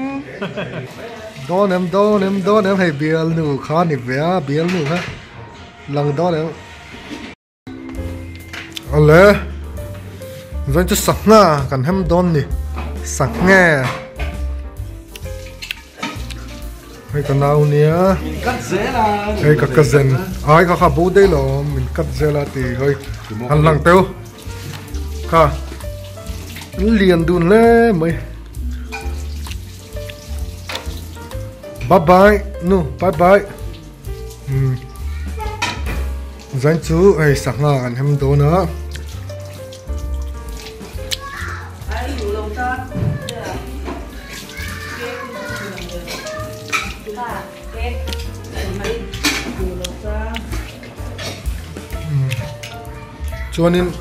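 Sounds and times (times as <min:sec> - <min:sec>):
background music: 0:00.0 - 0:54.0
dishes and cutlery clattering: 0:04.5 - 0:05.4, 0:12.6 - 0:14.6, 0:15.2 - 0:21.4, 0:28.7 - 0:31.8, 0:35.3 - 0:36.5, 0:39.0 - 0:52.9
tap water splashing on plate: 0:12.4 - 0:54.0.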